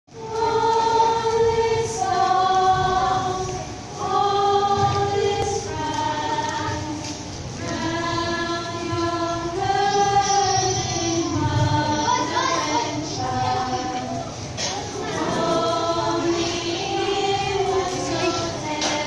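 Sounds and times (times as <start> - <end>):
women singing a cappella: 0.1 - 19.0.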